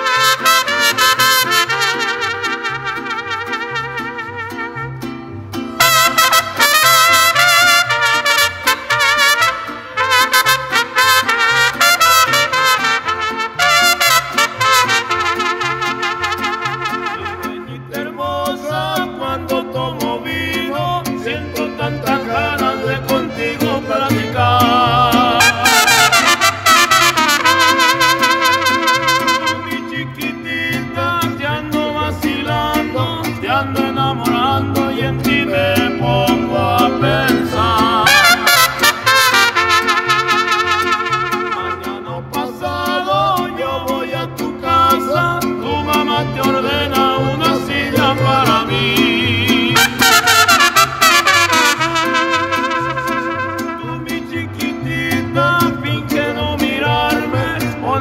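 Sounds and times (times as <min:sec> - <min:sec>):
wavering trumpet phrases: 0:00.0 - 0:05.0, 0:05.8 - 0:17.7, 0:25.4 - 0:29.9, 0:38.0 - 0:42.1, 0:49.7 - 0:54.1
string band rhythmic accompaniment: 0:00.0 - 0:58.0.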